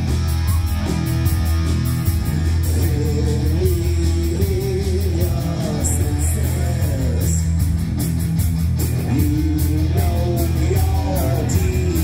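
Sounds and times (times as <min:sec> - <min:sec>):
heavy metal band playing: 0:00.0 - 0:12.0
man singing lead vocal: 0:02.6 - 0:07.6, 0:08.9 - 0:12.0.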